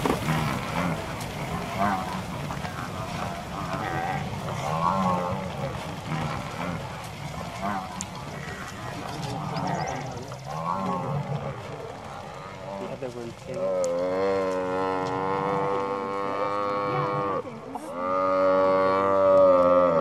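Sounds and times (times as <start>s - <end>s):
buffalo bellowing: 0.0s - 20.0s.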